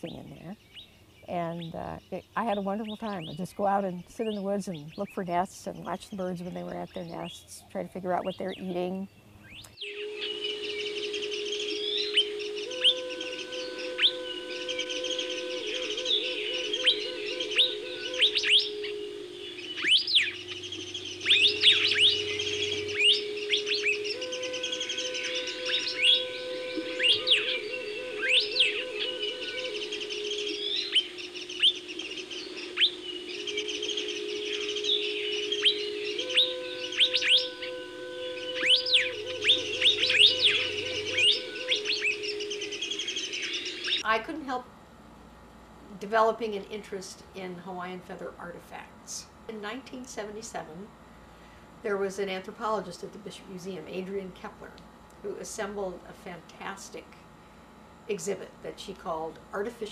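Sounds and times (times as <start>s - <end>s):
birds chirping and twittering: 0.0s - 44.2s
low sustained music tones: 0.0s - 59.9s.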